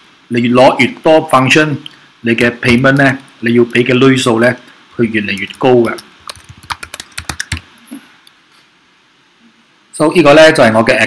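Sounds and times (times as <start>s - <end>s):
computer keyboard typing: 5.2s - 7.7s.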